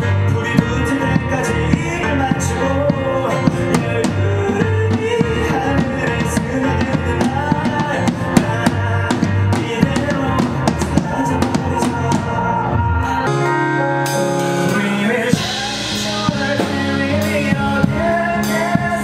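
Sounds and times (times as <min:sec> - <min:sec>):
bass guitar: 0:00.0 - 0:19.0
drum kit beat: 0:00.0 - 0:19.0
keyboard: 0:00.0 - 0:19.0
man singing: 0:00.0 - 0:19.0.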